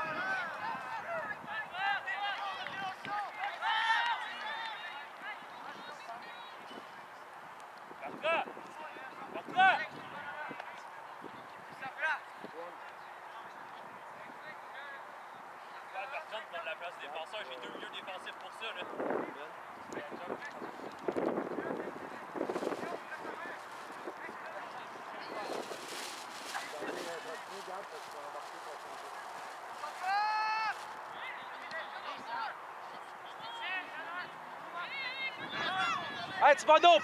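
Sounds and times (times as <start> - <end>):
indistinct shouts and voices: 0.0 - 6.7, 29.4 - 37.0.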